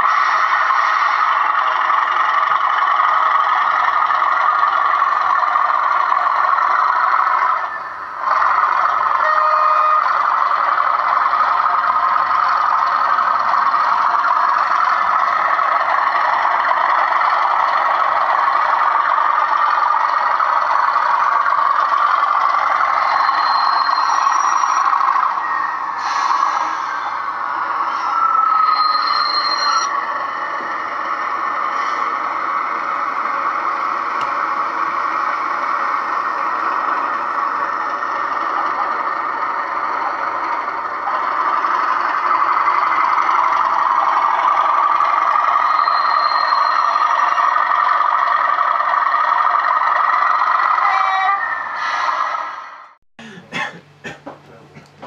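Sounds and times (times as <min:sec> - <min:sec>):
model train running on track: 0:00.0 - 0:52.9.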